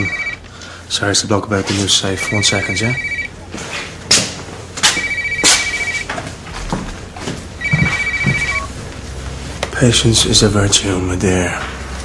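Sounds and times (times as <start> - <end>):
mobile phone trilling ringtone: 0.0 - 0.4, 2.2 - 3.3, 5.0 - 6.1, 7.6 - 8.8.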